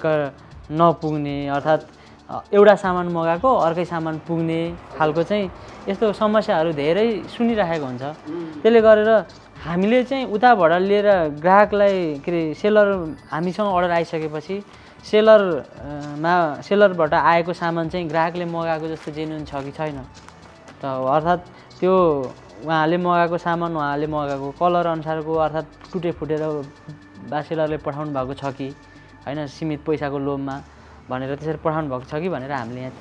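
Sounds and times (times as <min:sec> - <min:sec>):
man speaking: 0:00.0 - 0:20.2, 0:20.8 - 0:33.0
man talking: 0:00.0 - 0:20.2, 0:20.8 - 0:33.0.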